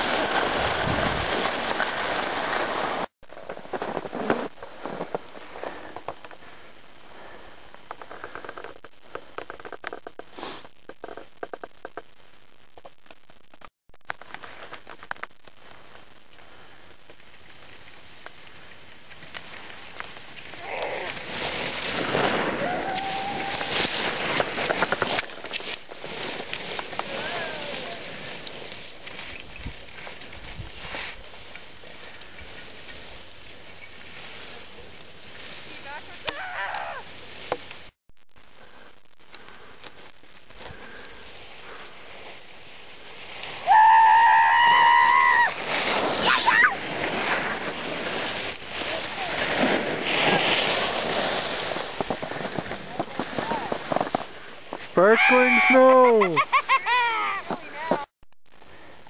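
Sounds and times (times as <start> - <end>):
skis scraping over snow: 0.0 - 11.2, 14.2 - 38.0, 38.6 - 59.0
wind on microphone: 0.6 - 1.4
person whooping: 22.5 - 23.9, 27.1 - 28.1, 36.2 - 37.1, 43.6 - 45.6, 46.2 - 46.8, 53.4 - 53.8, 55.0 - 58.0.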